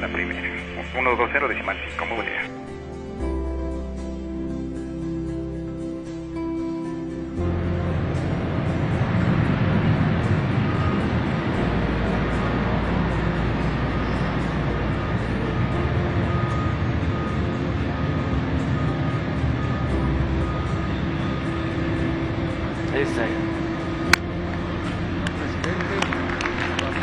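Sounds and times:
jet engines roaring: 0.0 - 27.0.

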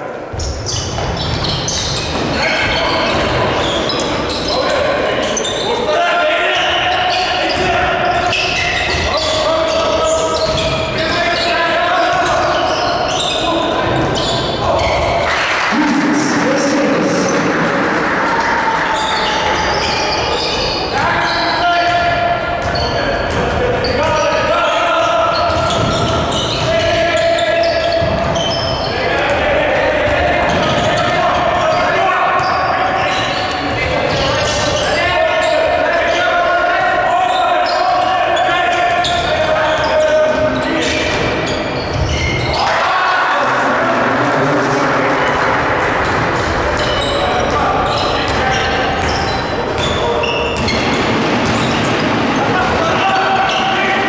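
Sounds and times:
voices calling out: 0.0 - 54.0.

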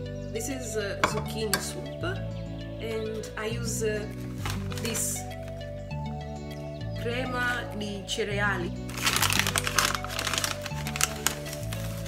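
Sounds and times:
background music: 0.0 - 12.0
foil bag crinkling: 4.2 - 5.6, 8.9 - 12.0.

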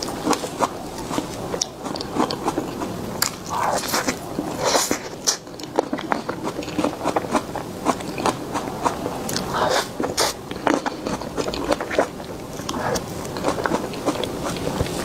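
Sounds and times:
mouth sounds eating cake: 0.0 - 15.0.

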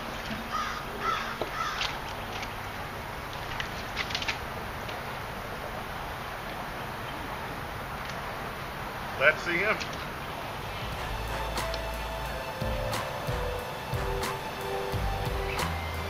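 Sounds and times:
bird calling: 0.0 - 2.5, 10.6 - 16.0
outdoor background hiss: 0.0 - 16.0.

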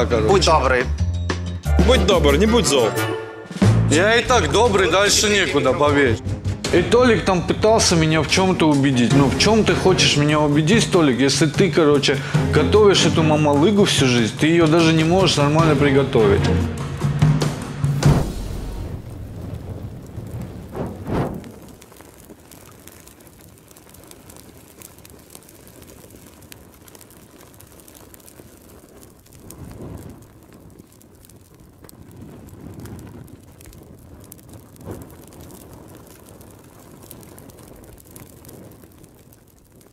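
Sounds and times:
crackling rumbling noise: 3.7 - 39.9
whooshing hits: 17.6 - 21.8
short sharp hit: 17.9 - 19.6.

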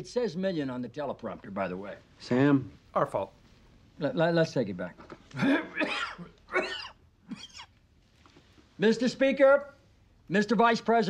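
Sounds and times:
man clearing his throat: 5.3 - 7.7.

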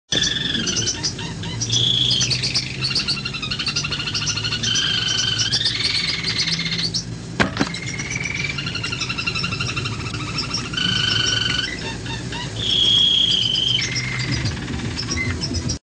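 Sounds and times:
bird singing whistles and trills: 0.1 - 15.8
steady low hum: 0.1 - 15.8.

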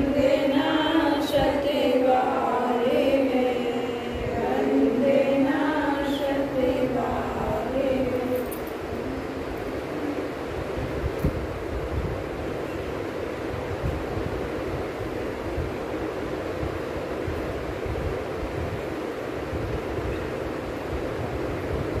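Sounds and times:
steady rumbling with hiss: 0.0 - 22.0.

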